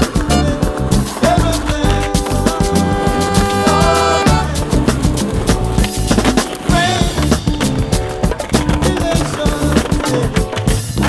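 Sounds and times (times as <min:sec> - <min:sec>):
loud music with steady beat: 0:00.0 - 0:11.0
skateboard deck slapping down: 0:00.0 - 0:11.0
skateboard wheels rolling on concrete: 0:00.0 - 0:11.0.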